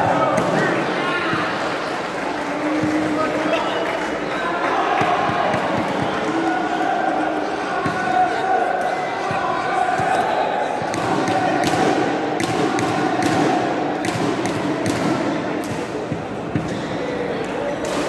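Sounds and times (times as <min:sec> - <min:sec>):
hubbub of voices: 0:00.0 - 0:18.0
rackets hitting shuttlecocks: 0:10.8 - 0:16.7.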